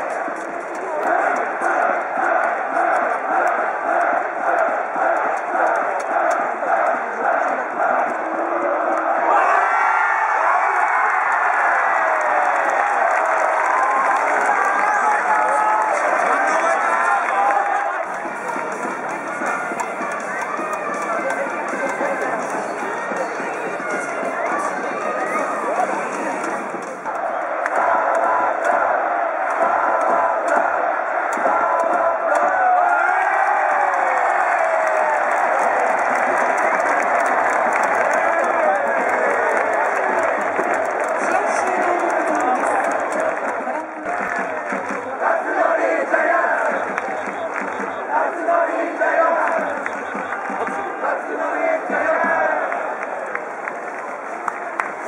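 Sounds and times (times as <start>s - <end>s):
crowd cheering and shouting: 0.0s - 55.0s.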